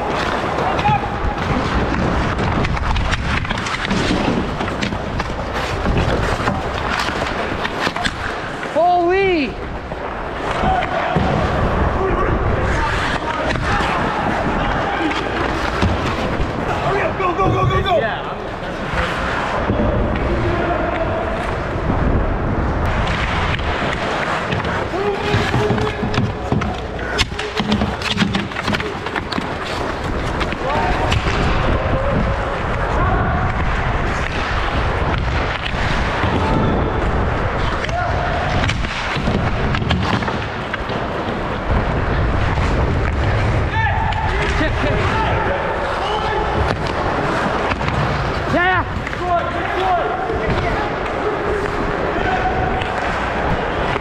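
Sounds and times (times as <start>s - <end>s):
indistinct shouts and voices: 0.0s - 2.3s, 10.4s - 21.9s, 24.0s - 29.2s, 30.4s - 39.7s, 43.0s - 54.0s
sticks and puck clacking: 0.0s - 22.2s, 22.8s - 54.0s
skates scraping on ice: 0.0s - 54.0s.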